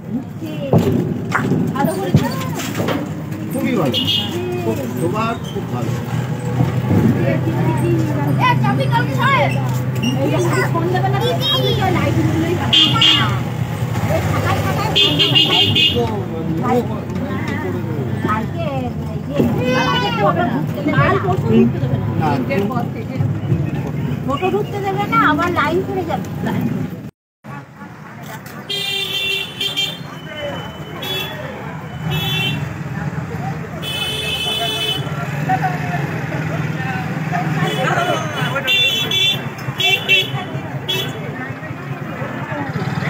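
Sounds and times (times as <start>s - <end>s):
people talking: 0.0s - 26.8s, 27.5s - 43.0s
crowd voices: 0.0s - 43.0s
street traffic: 0.0s - 43.0s.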